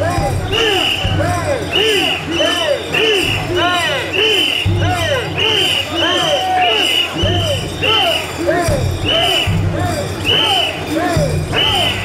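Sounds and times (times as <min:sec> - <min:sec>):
people chanting in rhythm: 0:00.0 - 0:12.0
high whistle blasts: 0:00.5 - 0:08.4, 0:09.0 - 0:10.9, 0:11.5 - 0:12.0.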